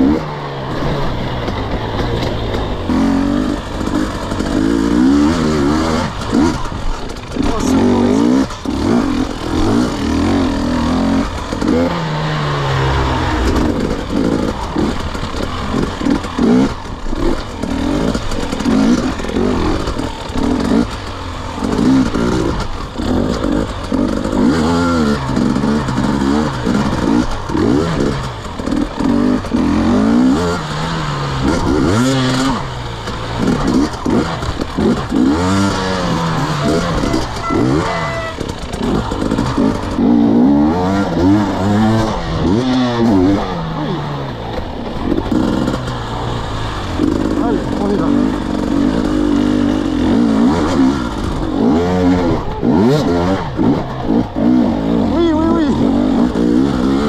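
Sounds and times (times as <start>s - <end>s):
dirt bike engine revving: 0.0s - 57.0s.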